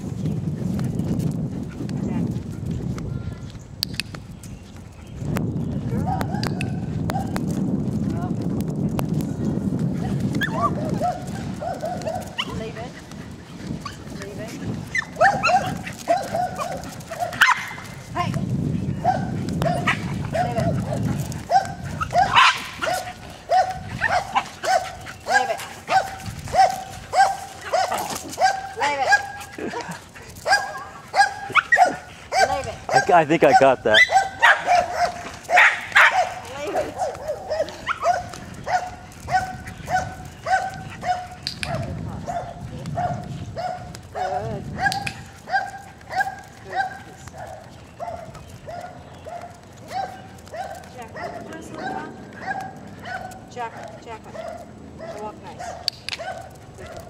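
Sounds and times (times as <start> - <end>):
dog barking: 6.0 - 7.4, 10.4 - 12.7, 14.9 - 17.9, 19.0 - 29.4, 30.4 - 57.0.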